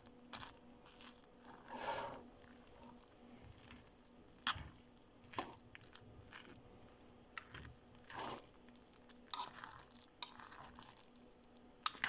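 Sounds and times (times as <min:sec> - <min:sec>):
faint steady hum: 0:00.0 - 0:12.0
spoon scraping rice in metal pot: 0:08.1 - 0:08.5.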